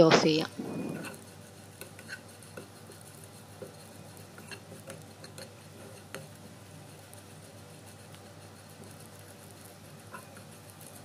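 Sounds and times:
spatula scraping a pan: 0:00.0 - 0:11.0.

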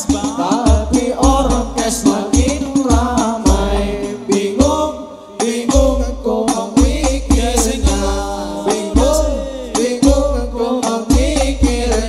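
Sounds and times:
frame drums: 0:00.0 - 0:12.0
man singing devotional melody: 0:00.0 - 0:12.0.

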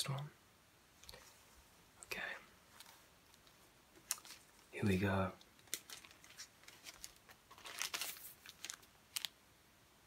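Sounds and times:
album jacket rustling and crinkling: 0:02.6 - 0:09.4.

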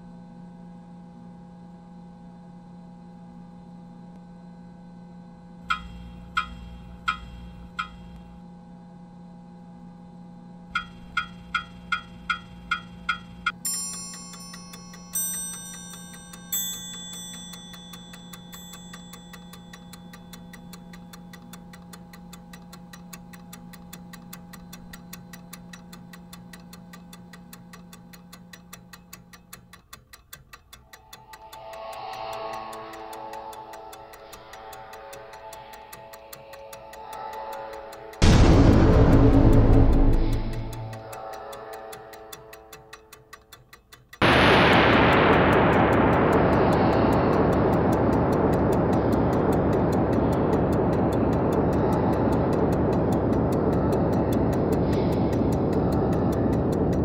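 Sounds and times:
clock-like ticking: 0:05.6 - 0:08.3, 0:10.7 - 0:57.0
ringing chime-like strikes: 0:13.5 - 0:20.7, 0:38.0 - 0:41.8
steady low drone: 0:30.8 - 0:43.0, 0:44.2 - 0:57.0
wavering sound: 0:30.9 - 0:42.4.

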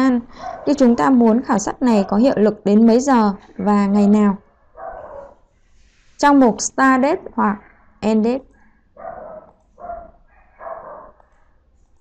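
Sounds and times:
person speaking: 0:00.0 - 0:04.4, 0:06.2 - 0:08.5
dog barking: 0:00.4 - 0:01.2, 0:04.8 - 0:05.4, 0:09.0 - 0:11.3.

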